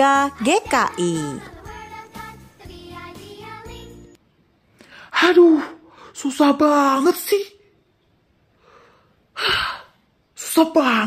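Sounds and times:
soft inhale: 4.8 - 5.1, 8.6 - 10.0.

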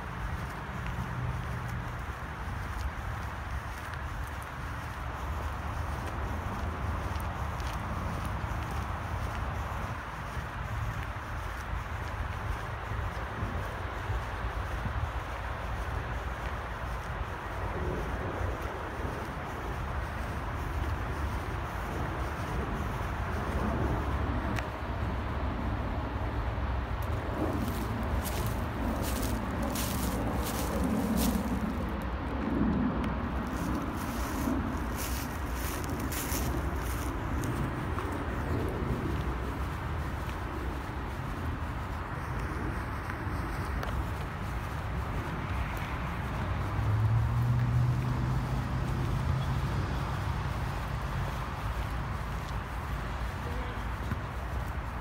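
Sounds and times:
car passing: 0.0 - 55.0
steady low rumble: 0.0 - 55.0.

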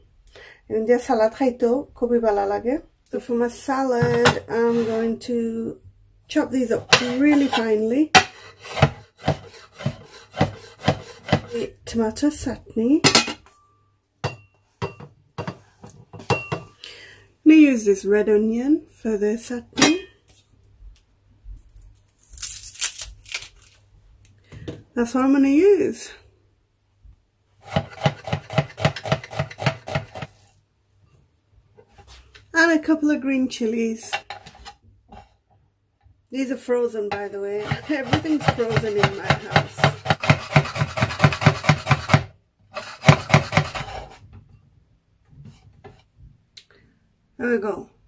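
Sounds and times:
knife chopping on a board: 8.2 - 11.5, 27.6 - 30.3, 37.6 - 44.0
onion skin peeling crackle: 21.6 - 23.8.

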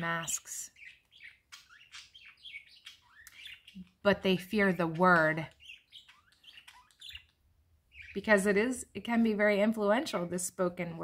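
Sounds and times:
faint bird chirps: 0.0 - 4.0, 4.6 - 8.5.

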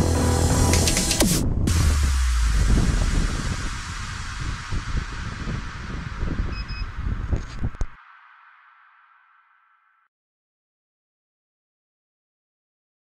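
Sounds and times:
wind buffeting microphone: 1.4 - 8.0.

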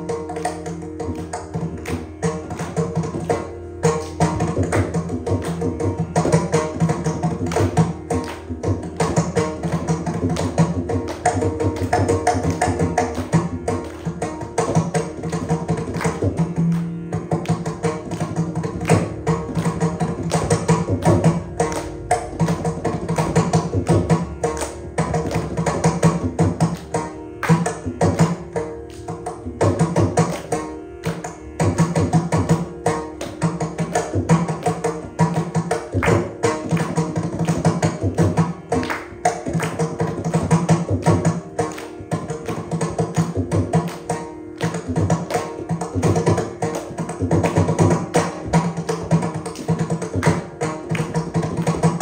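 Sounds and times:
mridangam drum strokes: 0.0 - 52.0.

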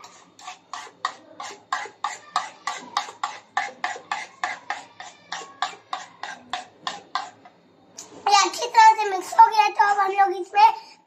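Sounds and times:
spoon beating batter in bowl: 0.0 - 8.1.

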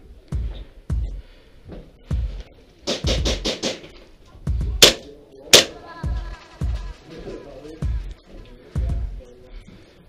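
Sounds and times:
background music with low beat: 0.0 - 10.0
airsoft pistol shots: 4.8 - 5.8.

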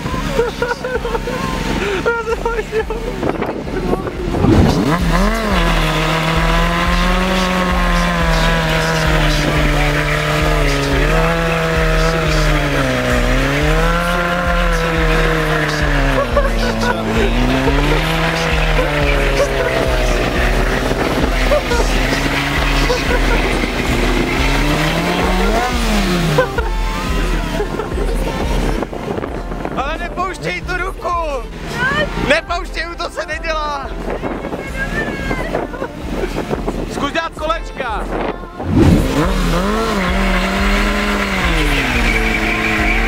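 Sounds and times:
motorcycle engine at high revs: 0.0 - 29.7, 38.6 - 43.0
tyre squeal: 41.5 - 43.0.

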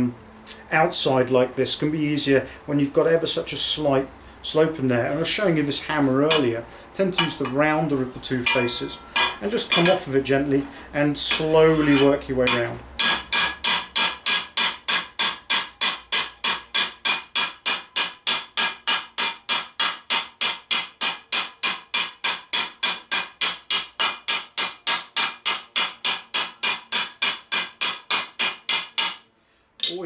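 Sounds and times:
hammer striking sheet metal: 8.4 - 10.0, 11.3 - 30.0.

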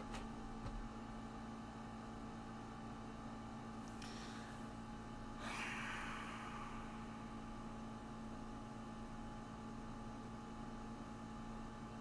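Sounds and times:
low electrical hum: 0.0 - 12.0
even hiss: 5.4 - 7.9.

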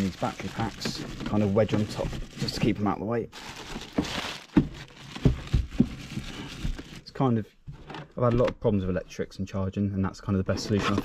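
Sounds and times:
plastic bag rustling: 0.0 - 7.2.

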